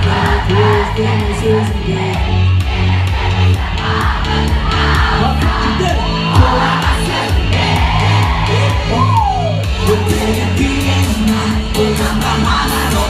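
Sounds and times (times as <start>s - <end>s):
pop music with heavy bass: 0.0s - 13.0s
crowd cheering and whooping: 0.1s - 10.8s.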